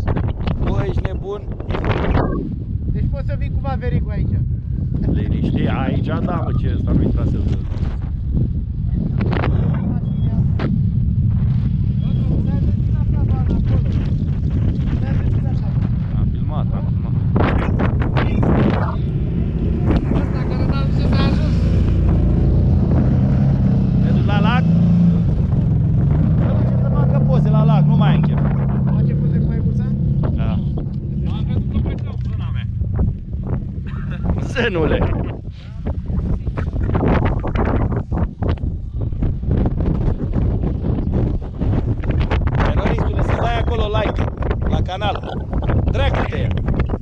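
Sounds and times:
wind buffeting microphone: 0.0s - 47.0s
people talking: 0.5s - 2.4s, 3.0s - 4.4s, 5.0s - 7.7s, 8.9s - 10.6s, 12.0s - 14.1s, 14.9s - 19.1s, 19.7s - 21.9s, 24.0s - 24.8s, 26.4s - 32.7s, 33.9s - 36.7s, 42.6s - 46.6s
engines running: 9.1s - 37.6s.

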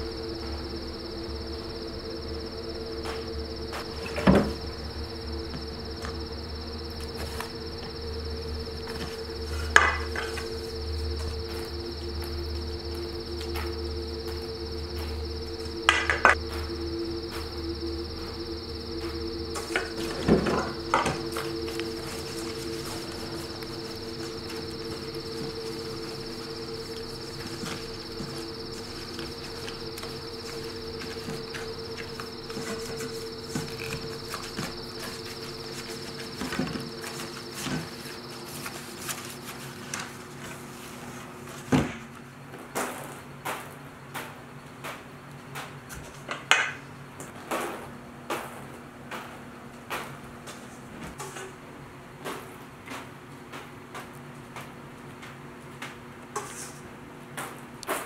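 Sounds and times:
high even buzzing: 0.0s - 39.7s
cricket trilling: 0.0s - 40.2s
low hum: 0.0s - 40.2s
ambient drone of held tones: 0.0s - 42.0s.

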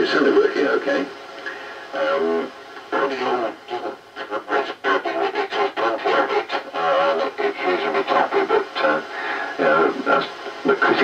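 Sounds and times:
voice over radio loudspeaker: 0.0s - 11.0s.

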